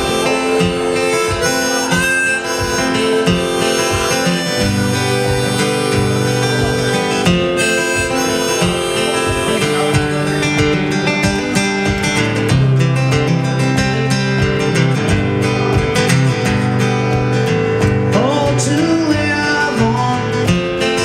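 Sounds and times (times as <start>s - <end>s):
harmonica melody: 0.0s - 12.4s
strummed acoustic guitar: 0.0s - 21.0s.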